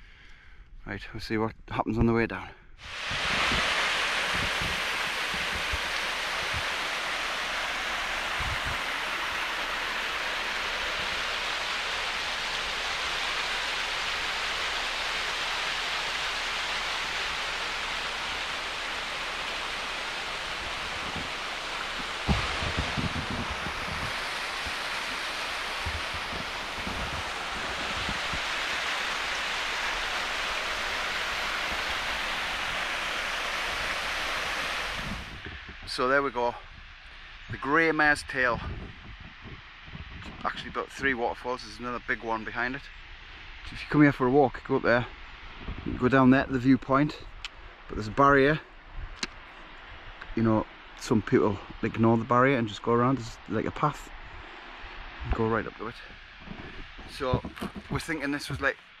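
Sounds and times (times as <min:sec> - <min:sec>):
waterfall rushing over rocks: 0:02.8 - 0:36.3, 0:50.4 - 0:59.0
low thump: 0:22.2 - 0:24.1.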